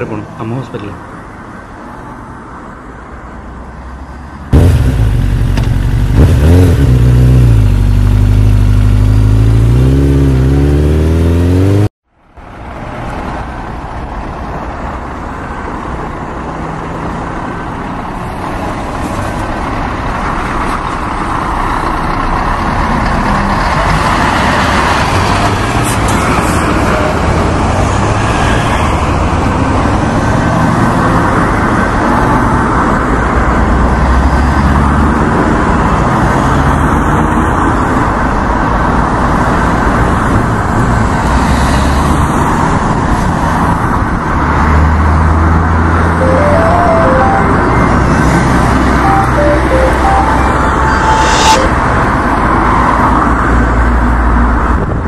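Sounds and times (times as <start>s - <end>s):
road noise: 0.0s - 55.0s
motorcycle engine revving: 4.5s - 11.9s.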